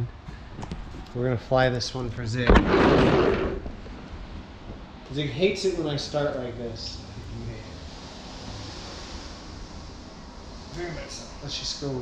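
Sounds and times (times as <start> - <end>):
low steady room hiss: 0.0 - 12.0.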